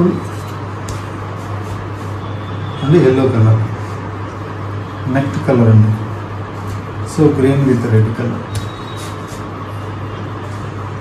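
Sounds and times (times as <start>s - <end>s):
person speaking: 0.0s - 1.6s.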